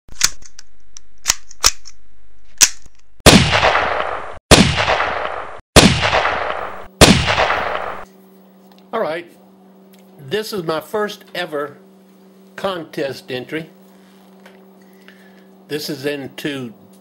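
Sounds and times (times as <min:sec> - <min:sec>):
loud gunshots with echoing tail: 0:03.3 - 0:08.1.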